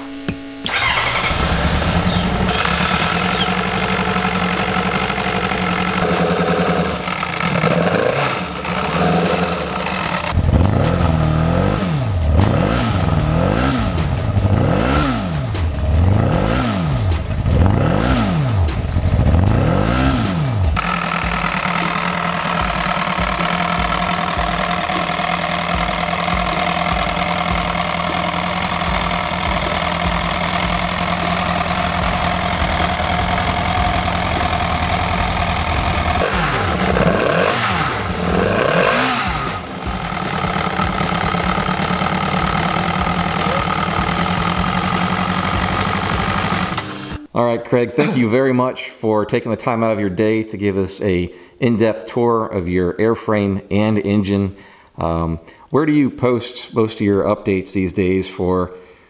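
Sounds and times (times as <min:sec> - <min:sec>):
engine revving and idling: 0:00.7 - 0:47.2.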